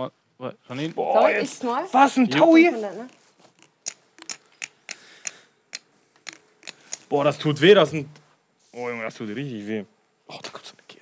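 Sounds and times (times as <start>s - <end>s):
poker chips clacking: 3.0s - 7.1s.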